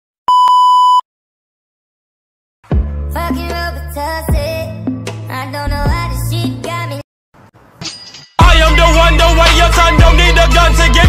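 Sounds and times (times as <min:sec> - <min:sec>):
steady test tone beep: 0:00.3 - 0:01.0.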